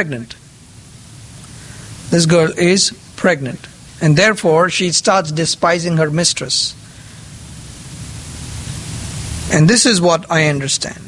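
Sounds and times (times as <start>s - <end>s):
room noise hiss: 0.0s - 11.0s.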